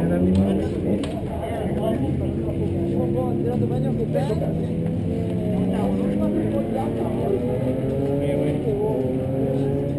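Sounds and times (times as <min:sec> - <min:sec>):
people talking: 0:00.0 - 0:09.9.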